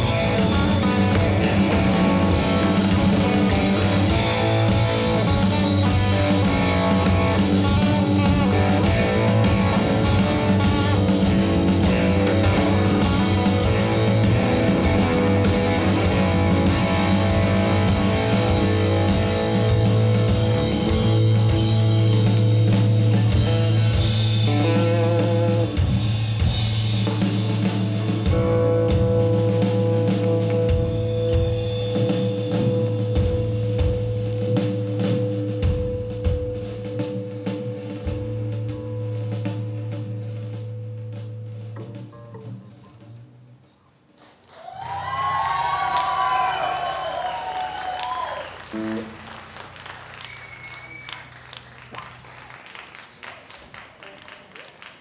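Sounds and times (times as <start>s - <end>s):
electric guitar: 0.0s - 43.2s, 44.9s - 52.2s
bass guitar: 0.0s - 43.8s, 44.8s - 52.6s
drum kit: 0.0s - 44.1s, 44.7s - 52.8s.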